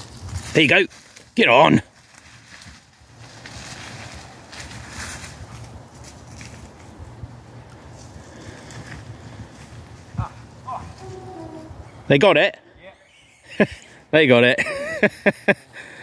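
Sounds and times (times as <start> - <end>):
wind rumbling on microphone: 0.0 - 1.0, 2.2 - 12.1
dry undergrowth rustling: 0.0 - 12.0.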